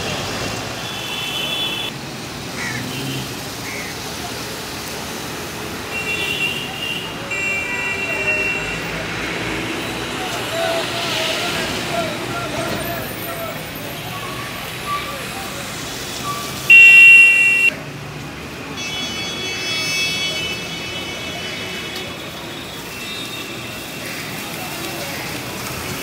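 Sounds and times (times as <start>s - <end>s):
street traffic: 0.0s - 26.0s
background voices: 8.6s - 16.4s
vehicle horn blast: 16.7s - 17.7s.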